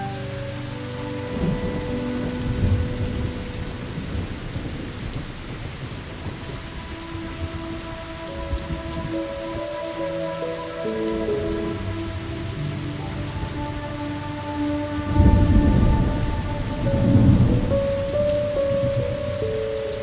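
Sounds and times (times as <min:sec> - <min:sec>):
slow sustained music notes: 0:00.0 - 0:20.0
steady rain: 0:00.0 - 0:20.0
thunder rumbling: 0:00.0 - 0:20.0.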